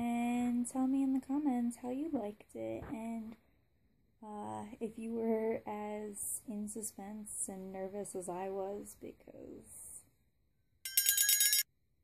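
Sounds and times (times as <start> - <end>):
high-pitched trilling ring: 10.9 - 11.7.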